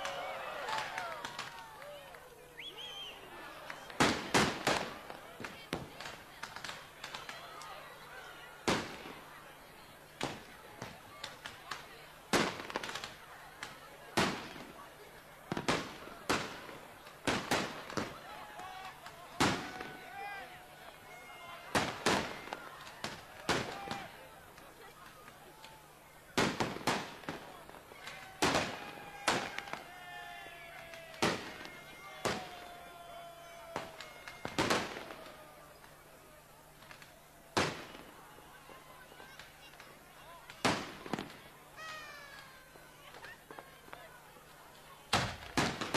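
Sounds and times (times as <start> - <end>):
faint voices: 0.0 - 45.9
fireworks banging: 3.7 - 7.4, 10.2 - 20.0, 21.6 - 29.9, 30.7 - 36.0, 36.8 - 44.1, 45.1 - 45.9.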